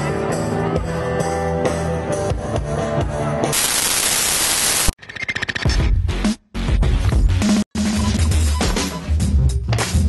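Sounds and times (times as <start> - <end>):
loud static hiss: 3.5 - 5.0.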